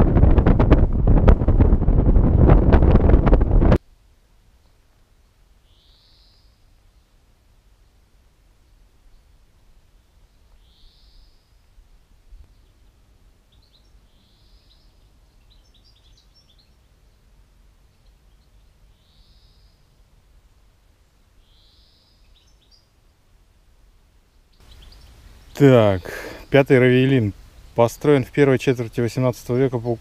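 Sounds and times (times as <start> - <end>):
faint low outdoor rumble: 0.0 - 30.0
songbird singing: 4.6 - 20.2, 21.1 - 30.0
bird chirps: 5.6 - 6.6, 10.6 - 11.6, 12.4 - 17.3, 17.9 - 19.9, 21.4 - 22.9, 24.3 - 26.6.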